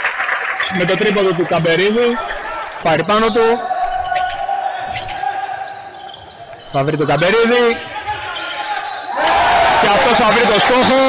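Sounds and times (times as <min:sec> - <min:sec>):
basketball and court noise: 0:00.0 - 0:11.0
sports commentary: 0:00.6 - 0:11.0.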